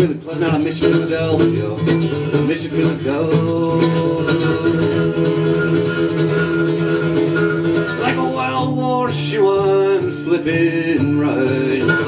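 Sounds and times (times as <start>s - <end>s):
person singing: 0.0s - 5.5s, 7.8s - 12.0s
acoustic guitar strumming: 0.0s - 12.0s.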